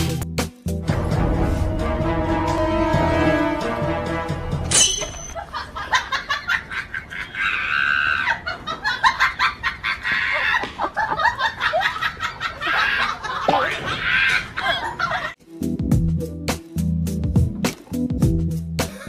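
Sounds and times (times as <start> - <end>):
music with a beat: 15.5 - 19.0.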